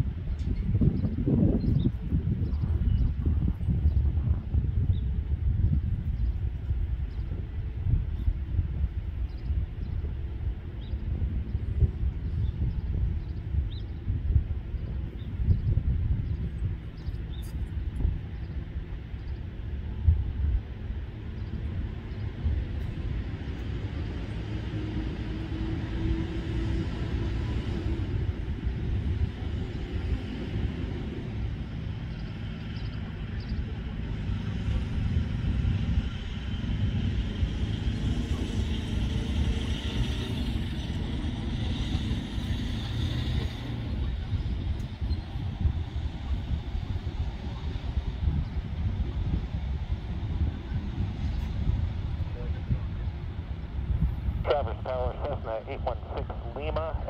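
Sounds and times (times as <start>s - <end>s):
distant airliner rumble: 0.0s - 57.0s
turbofan whine: 0.0s - 57.0s.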